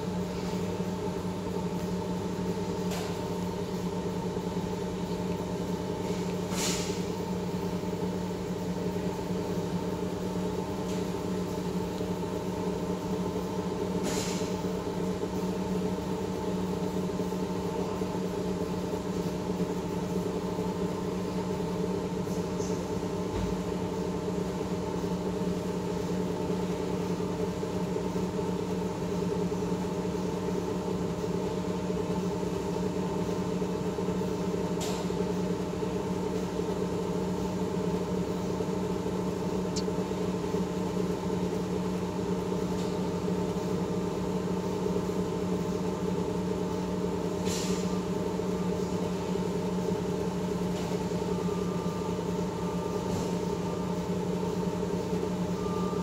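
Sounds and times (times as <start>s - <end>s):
oven fan humming: 0.0s - 56.0s.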